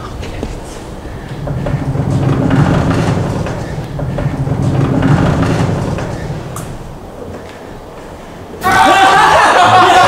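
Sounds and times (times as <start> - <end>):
low rumble: 0.0 - 8.6.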